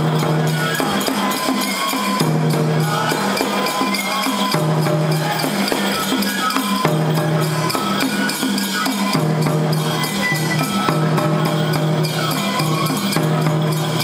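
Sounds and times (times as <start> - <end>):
jangling metal percussion: 0.0 - 14.0
taiko drum beating: 0.0 - 14.0.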